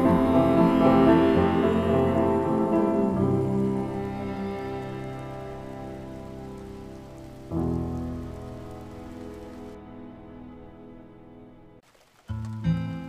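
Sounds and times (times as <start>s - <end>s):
rain falling: 0.0s - 9.8s, 11.8s - 13.0s
piano chords: 0.0s - 11.8s.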